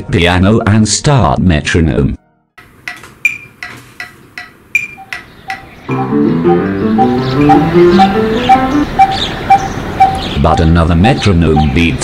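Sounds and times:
metronome ticking: 2.8 - 12.0
upright piano playing: 4.8 - 10.8.

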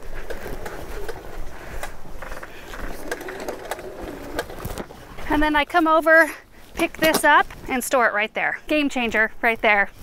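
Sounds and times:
hose reel whirring and clicking: 0.0 - 5.0.

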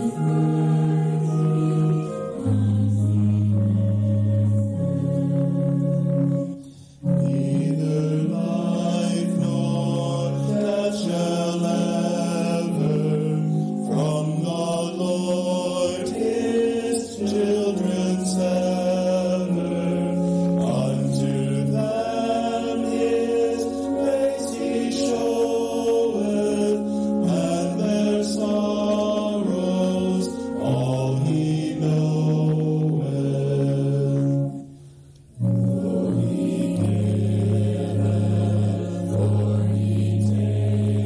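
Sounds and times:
church choir singing a hymn: 0.0 - 41.0.

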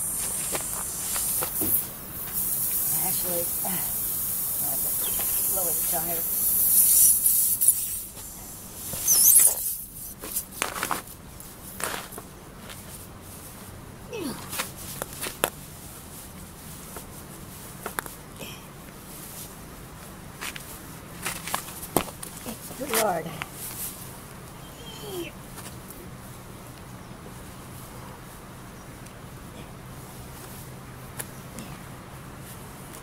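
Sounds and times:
air hissing from tyre: 0.0 - 10.2.

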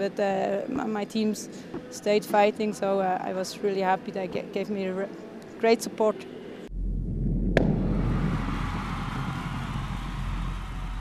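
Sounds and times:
long rumbling noise: 6.7 - 11.0
low hum: 6.7 - 11.0
sharp hit: 6.8 - 8.6.

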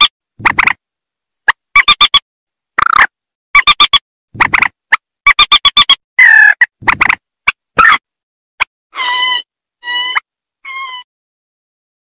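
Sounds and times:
long steady bird calls: 8.9 - 11.1.

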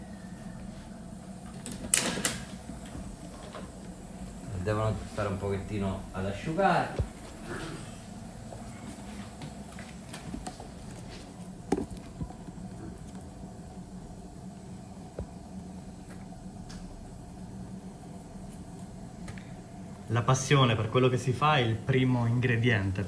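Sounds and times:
low steady hum: 0.0 - 23.0.

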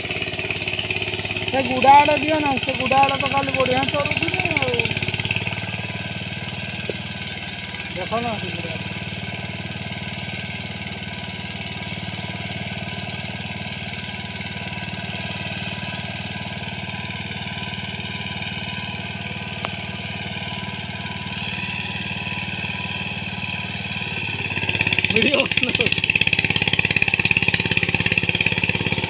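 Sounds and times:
power tiller engine running: 0.0 - 29.0.

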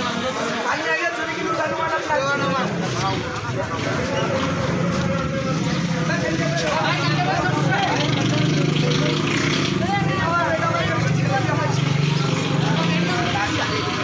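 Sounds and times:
men talking: 0.0 - 14.0.

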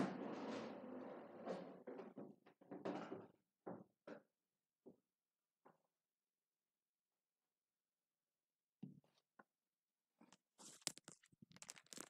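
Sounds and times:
objects rustling and scraping: 10.2 - 12.0.

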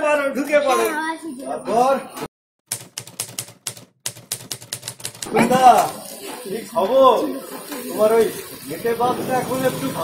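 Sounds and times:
rapid sharp clicks: 2.7 - 5.3.

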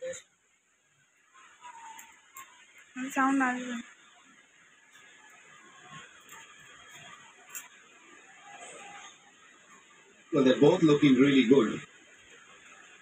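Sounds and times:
faint television broadcast: 0.0 - 13.0.

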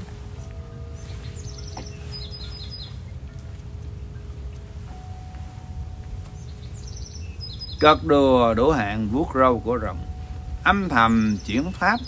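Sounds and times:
faint steady hum: 0.0 - 12.0
low background rumble: 0.0 - 12.0
small bird chirping: 1.0 - 5.1, 6.0 - 12.0.

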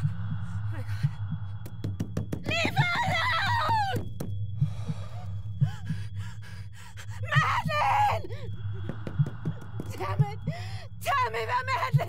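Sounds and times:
low steady drone: 0.0 - 1.9, 2.5 - 12.0.

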